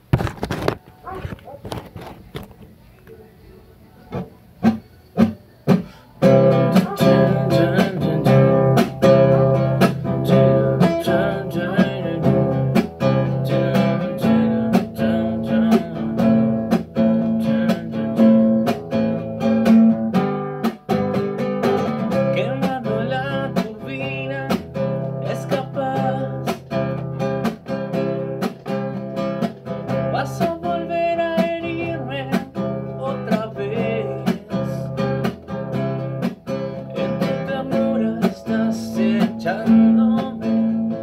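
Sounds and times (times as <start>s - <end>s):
acoustic guitar strumming: 4.1s - 41.0s.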